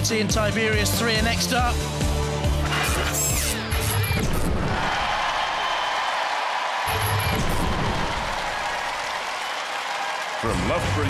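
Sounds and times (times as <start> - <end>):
studio audience cheering: 3.6 - 11.0.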